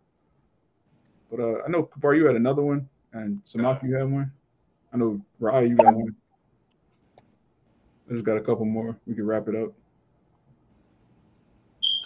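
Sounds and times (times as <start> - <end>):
short high-pitched electronic beep: 5.8 - 6.0.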